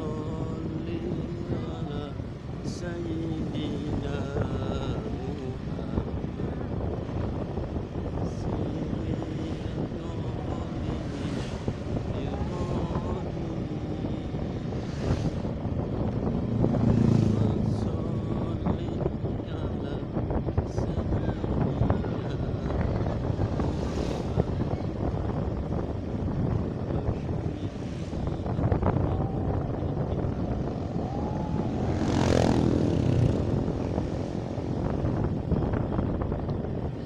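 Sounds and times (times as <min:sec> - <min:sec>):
wind and road noise: 0:00.0 - 0:37.0.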